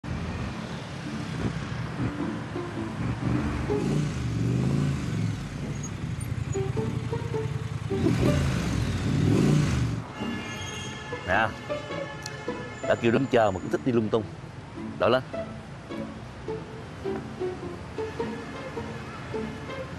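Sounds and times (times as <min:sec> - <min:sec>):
cars and motorbikes driving past: 0:00.0 - 0:19.9
background music: 0:01.1 - 0:19.9.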